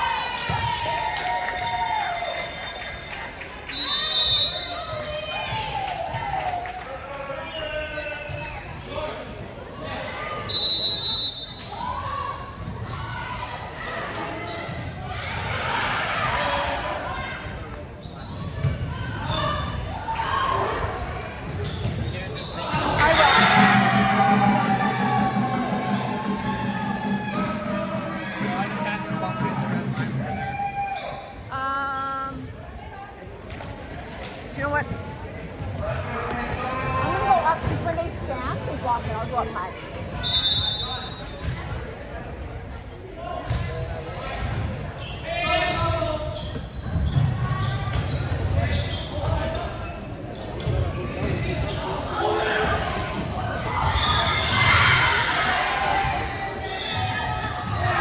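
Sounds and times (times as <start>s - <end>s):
people shouting and cheering: 0.0s - 17.6s, 22.5s - 32.5s, 35.7s - 41.7s, 50.8s - 58.0s
referee whistle blasts: 3.7s - 4.8s, 10.4s - 11.8s, 40.2s - 41.3s.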